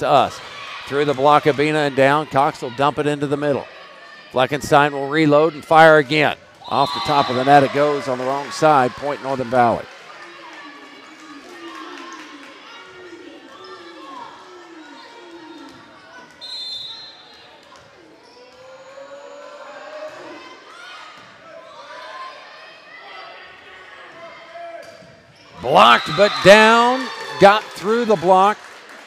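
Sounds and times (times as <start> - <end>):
spectators' voices in a gym: 0.0 - 29.0
referee's whistle blast: 6.6 - 7.6
repeated calls from stands: 6.6 - 9.9, 25.6 - 28.6.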